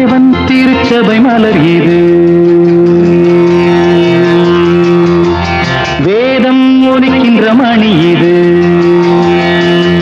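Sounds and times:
singer holding a long note: 0:00.0 - 0:10.0.

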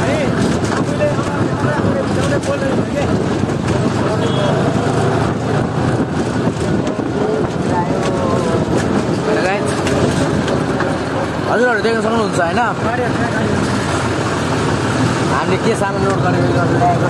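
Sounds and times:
people talking: 0:00.0 - 0:14.2, 0:15.2 - 0:17.0
tractor diesel engine running: 0:00.0 - 0:17.0.

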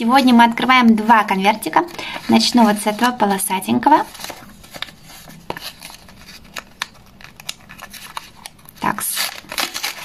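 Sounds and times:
paper crinkling: 0:00.0 - 0:10.0.

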